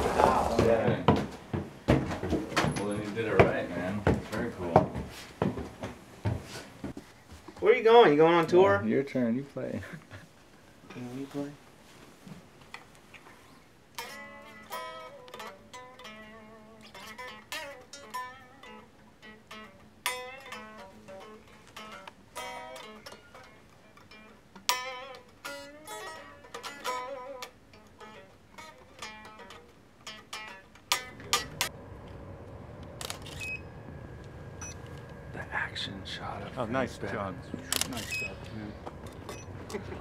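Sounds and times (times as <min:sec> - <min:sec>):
steady low background noise: 0:02.8 - 0:40.0
electric guitar picking: 0:14.0 - 0:40.0.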